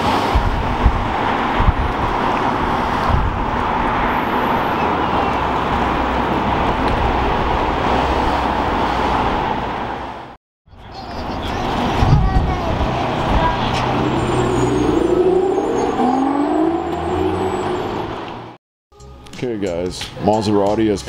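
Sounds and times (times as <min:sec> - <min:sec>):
vehicle engines running: 0:10.8 - 0:18.6
engine note rising and falling: 0:12.6 - 0:18.6.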